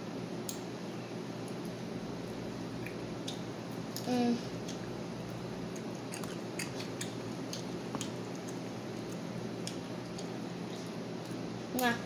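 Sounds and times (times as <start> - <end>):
child chewing with mouth clicks: 1.4 - 12.0.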